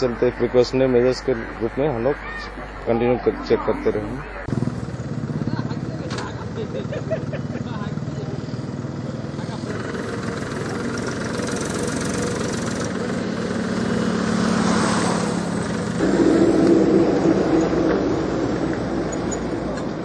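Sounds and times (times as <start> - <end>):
vehicle engine approaching: 0.0 - 20.0.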